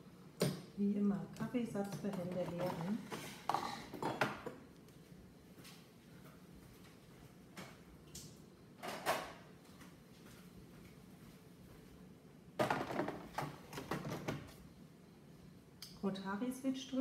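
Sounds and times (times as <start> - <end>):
plastic container knocking and clattering: 12.6 - 14.5.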